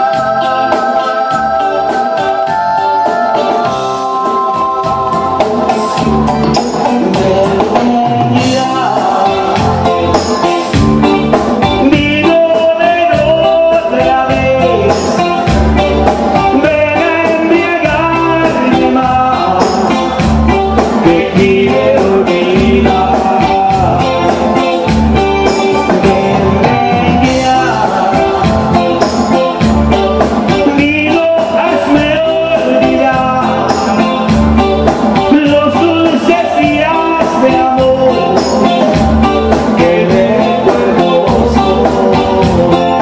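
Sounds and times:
man singing into a microphone: 0:00.0 - 0:03.8, 0:04.6 - 0:43.0
drums: 0:00.0 - 0:43.0
electric guitar: 0:00.0 - 0:43.0
keyboards: 0:00.0 - 0:43.0.

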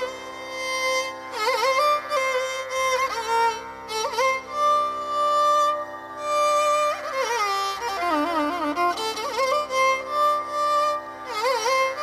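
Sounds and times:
violin melody: 0:00.0 - 0:12.0.

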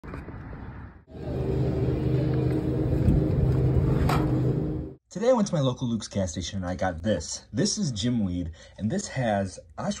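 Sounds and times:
drinks cooler compressor hum: 0:01.1 - 0:05.0.

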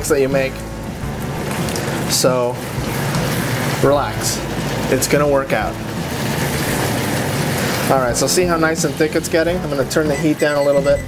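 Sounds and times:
sauce simmering and sizzling in pan: 0:00.1 - 0:10.4.

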